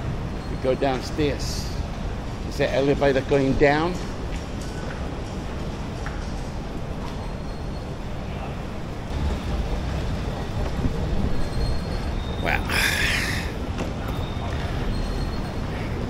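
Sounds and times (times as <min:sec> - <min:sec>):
rumble and hiss of train station: 0:00.0 - 0:16.0.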